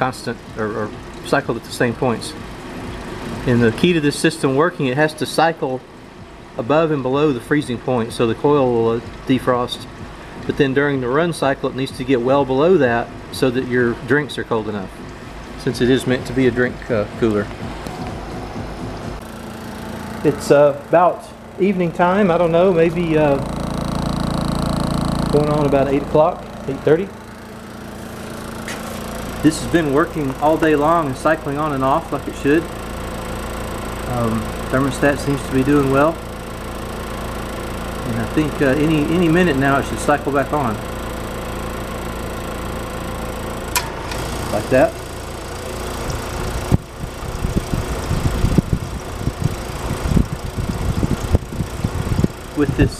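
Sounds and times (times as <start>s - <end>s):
refrigeration compressor running: 0.0s - 52.9s
steady hum: 0.0s - 52.9s.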